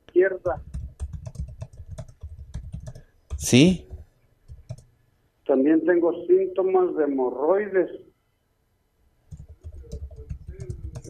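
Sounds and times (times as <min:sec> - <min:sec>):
computer keyboard typing: 0:00.5 - 0:04.9, 0:09.3 - 0:11.0.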